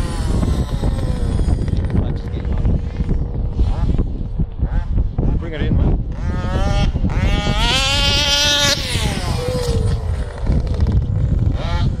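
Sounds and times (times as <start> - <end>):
two-stroke engine revving: 0.0 - 5.4, 6.0 - 12.0
low rumble: 0.0 - 12.0.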